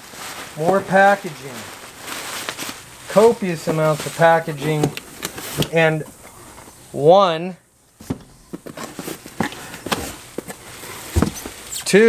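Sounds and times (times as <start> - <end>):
packaging crinkling and rustling: 0.0 - 6.7, 8.4 - 12.0
heavy thump: 11.1 - 11.6.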